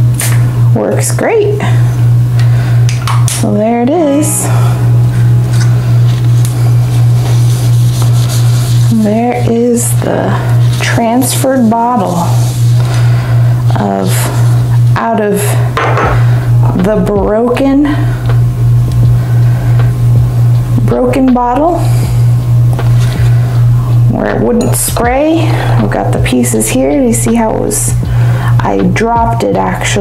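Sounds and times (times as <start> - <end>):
loud low hum: 0.0 - 30.0.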